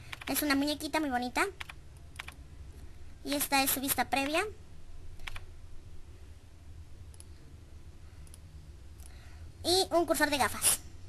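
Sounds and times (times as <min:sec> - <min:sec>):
steady low hum: 0:00.0 - 0:11.0
computer mouse clicks: 0:00.1 - 0:00.4, 0:01.6 - 0:02.4, 0:05.2 - 0:05.5, 0:07.1 - 0:07.4, 0:08.2 - 0:09.2.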